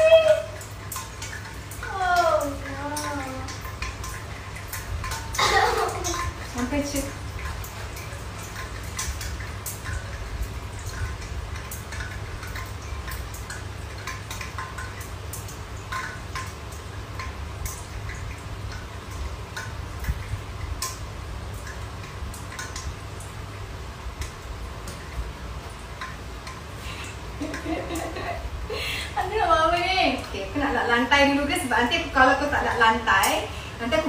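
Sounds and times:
hot oil popping in pan: 0.0 - 34.0
steady low hum: 0.0 - 34.0.

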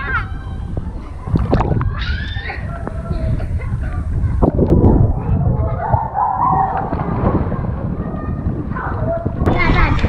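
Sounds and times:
water lapping and sloshing: 0.0 - 10.0
splash of diving into water: 6.6 - 7.9.

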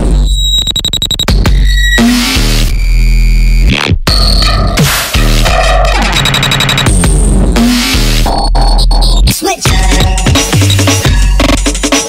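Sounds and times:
electronic bass music: 0.0 - 12.0.

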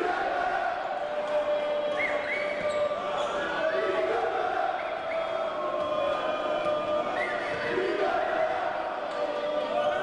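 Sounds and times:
arena crowd voices: 0.0 - 10.0.

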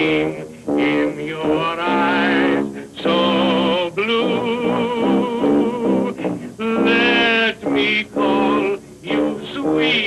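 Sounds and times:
man singing held notes: 0.0 - 10.0.

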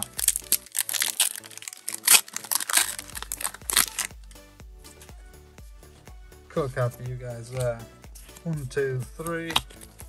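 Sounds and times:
foil wrapper crinkling and tearing: 0.0 - 4.2.

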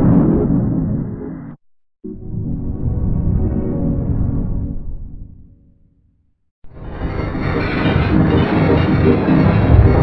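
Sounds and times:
low drone: 6.8 - 10.0.

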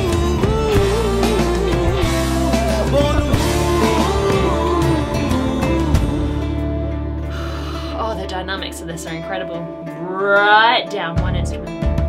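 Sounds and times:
person singing: 0.0 - 8.1
band music playing: 0.0 - 9.4.

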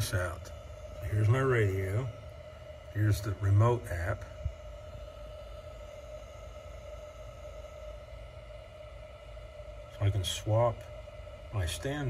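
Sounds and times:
low hum with faint whine: 0.0 - 12.0.

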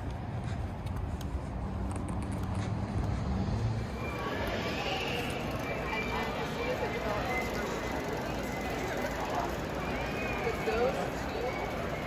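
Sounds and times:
traffic: 0.0 - 12.0.

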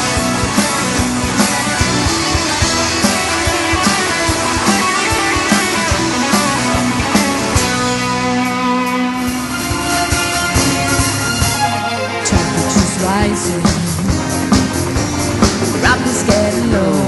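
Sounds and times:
steady drum beat: 0.0 - 8.6, 9.2 - 17.0
electric guitar: 0.0 - 17.0
keyboards: 0.0 - 17.0.

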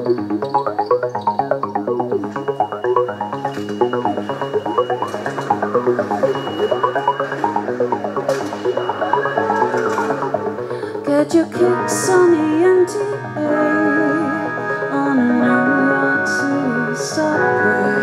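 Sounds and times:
guitar picking fast notes: 0.0 - 16.6
steady bass line: 0.0 - 18.0.

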